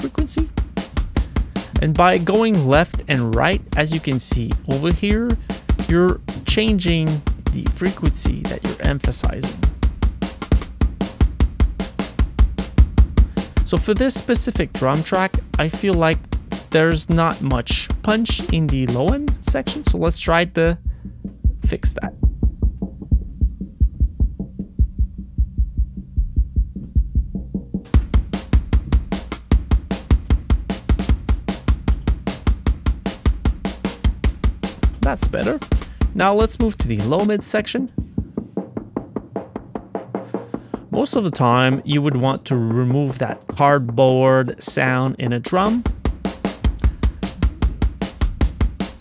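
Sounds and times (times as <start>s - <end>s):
hi-hat and snare hits: 0.0s - 25.2s, 25.9s - 49.0s
drum and bass drum groove: 0.0s - 49.0s
low kicks and thuds: 2.8s - 13.8s, 18.6s - 36.6s, 37.9s - 40.0s.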